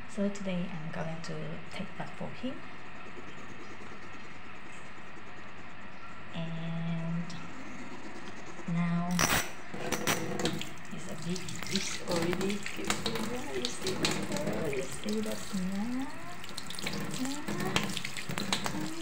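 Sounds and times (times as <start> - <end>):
tap water running into a sink: 9.8 - 19.0.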